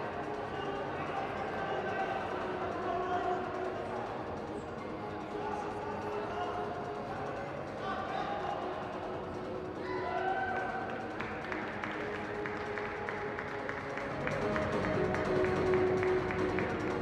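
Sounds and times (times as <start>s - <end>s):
music over arena sound system: 0.0s - 17.0s.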